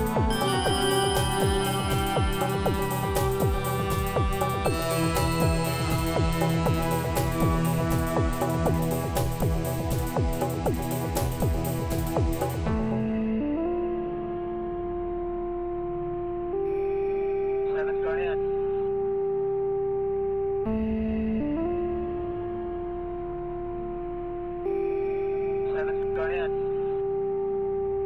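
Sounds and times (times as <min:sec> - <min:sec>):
ambient synthesizer pad chords: 0:00.0 - 0:15.2
warbling high synth tone: 0:00.3 - 0:08.0.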